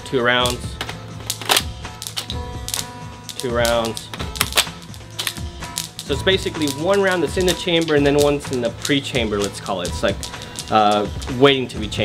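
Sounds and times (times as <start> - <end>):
plastic clicks and rattles: 0.8 - 11.3.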